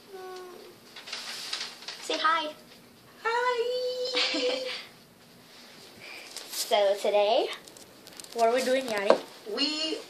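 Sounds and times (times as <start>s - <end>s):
girl humming: 0.0s - 0.8s
paper sheets rustling: 0.9s - 2.8s, 6.2s - 9.1s.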